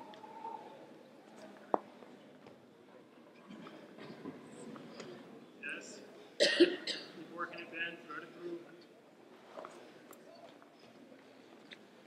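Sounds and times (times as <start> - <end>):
faint voices: 0.0 - 12.0
person coughing loudly: 6.4 - 7.2.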